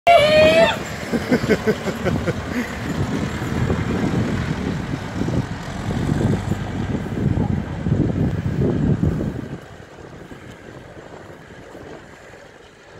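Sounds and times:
tractor engine rumble: 0.1 - 12.9
person laughing: 1.0 - 2.9.

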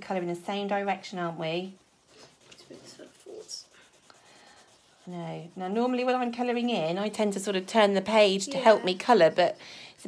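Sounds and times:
pencil scratching on paper: 0.0 - 8.8.

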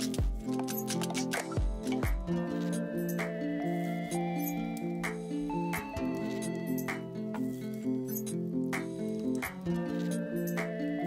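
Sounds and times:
instrumental music with light beat: 0.0 - 11.0.

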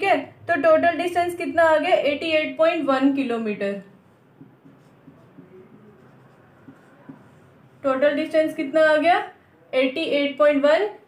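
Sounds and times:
person speaking: 0.0 - 10.2
marker writing on whiteboard: 2.0 - 9.1.

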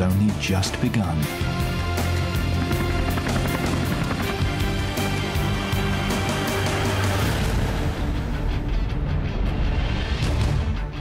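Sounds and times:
soundtrack music with steady beat: 0.0 - 11.0.

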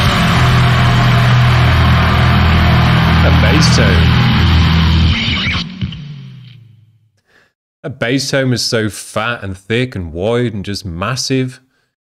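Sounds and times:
drum hit: 0.0 - 6.8
distorted bass note ringing: 0.0 - 7.0.

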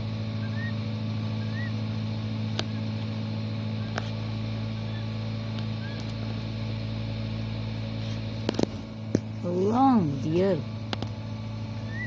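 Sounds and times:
low motor hum: 0.0 - 12.0.

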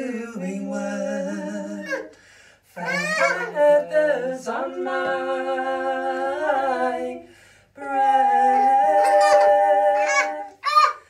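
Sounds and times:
baby squealing and babbling: 1.8 - 2.1, 2.8 - 3.6, 9.0 - 11.0.

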